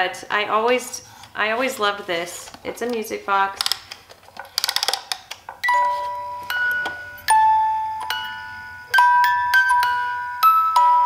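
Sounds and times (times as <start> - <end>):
winding clicks: 3.6 - 5.4
music box playing slow tune: 5.6 - 11.0.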